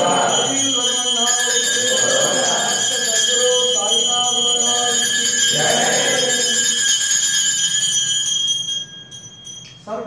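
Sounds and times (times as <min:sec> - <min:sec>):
bell ringing: 0:00.0 - 0:10.0.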